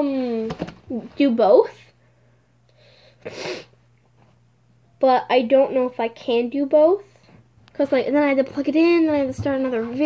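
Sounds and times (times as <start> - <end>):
faint intake of breath: 2.0 - 3.8.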